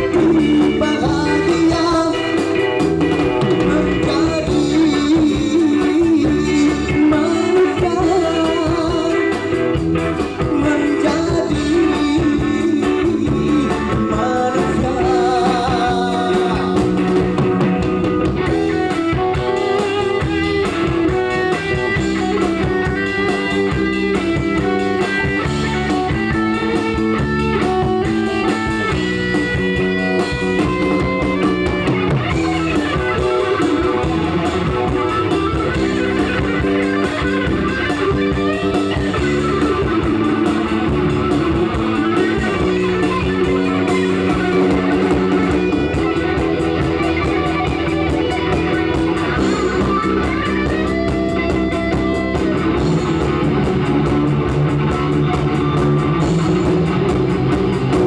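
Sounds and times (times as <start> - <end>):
bass guitar: 0.0 - 58.0
drums: 0.0 - 58.0
electric guitar melody: 0.0 - 58.0.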